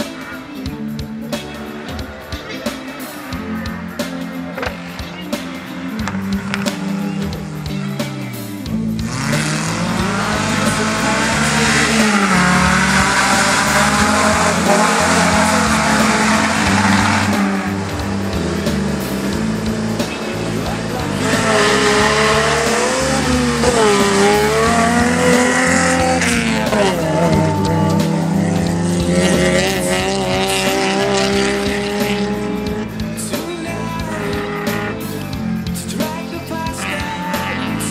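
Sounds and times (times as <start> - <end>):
music playing: 0.0 - 37.9
rally car engines revving: 0.0 - 37.9.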